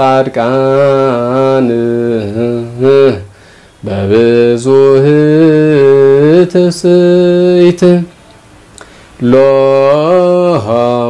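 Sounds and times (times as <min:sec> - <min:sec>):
man chanting: 0:00.0 - 0:08.2, 0:09.2 - 0:11.0.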